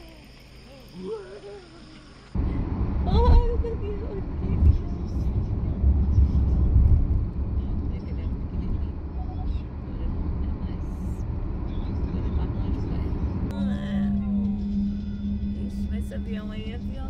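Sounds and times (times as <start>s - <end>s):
car road noise from inside: 2.3s - 17.0s.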